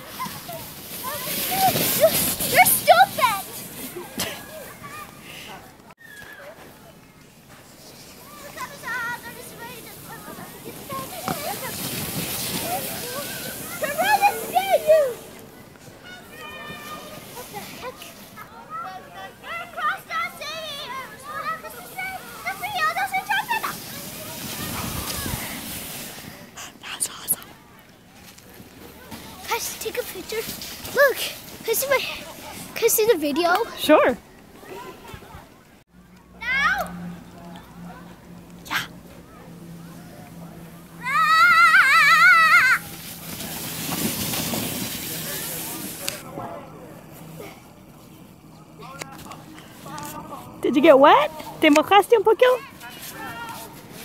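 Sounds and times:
snow spraying hiss: 0:00.0 - 0:04.7, 0:07.6 - 0:15.4, 0:21.4 - 0:26.5, 0:41.5 - 0:46.2
sled scraping over snow: 0:00.0 - 0:26.6, 0:28.1 - 0:35.6, 0:37.0 - 0:54.0.

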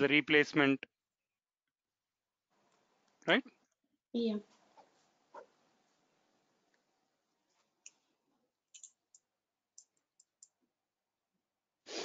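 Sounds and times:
computer mouse clicks: 0:08.7 - 0:10.6.

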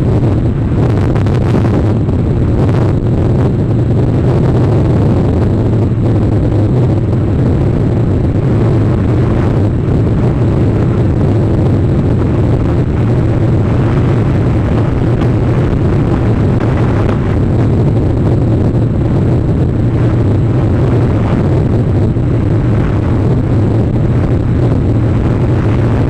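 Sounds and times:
wind buffeting microphone: 0:00.0 - 0:26.0.

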